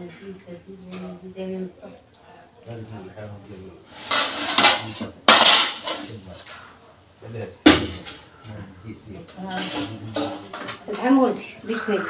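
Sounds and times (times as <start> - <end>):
metal ladle scraping in pot: 3.9 - 4.8.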